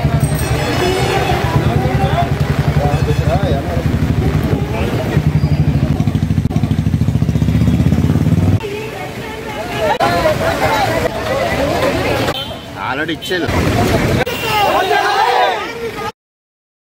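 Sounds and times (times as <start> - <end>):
faint voices: 0.0 - 16.1.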